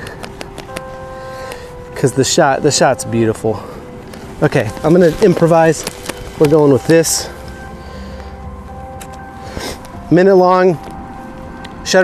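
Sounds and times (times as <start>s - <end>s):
sharp clicks and taps: 0.0s - 1.6s
soft background music: 0.0s - 12.0s.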